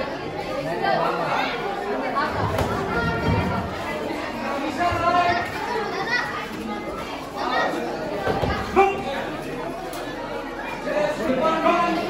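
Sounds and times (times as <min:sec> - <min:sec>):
crowd chatter echoing: 0:00.0 - 0:12.0.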